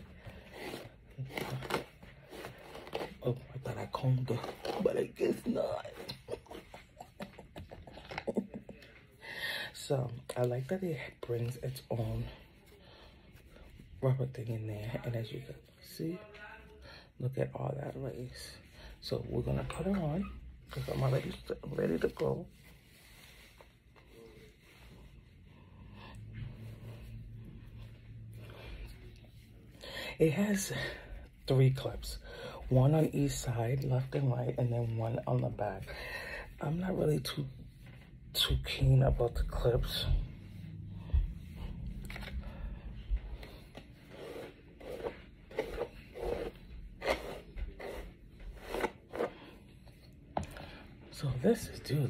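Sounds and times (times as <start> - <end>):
wig hair rustling: 0.0 - 16.3, 19.0 - 25.5, 26.1 - 52.0
wig hair rustling on microphone: 0.0 - 16.3, 17.7 - 25.5
low steady hum: 0.0 - 52.0.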